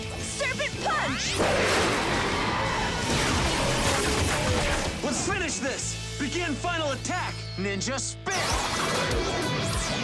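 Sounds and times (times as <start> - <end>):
action background music: 0.0 - 10.0.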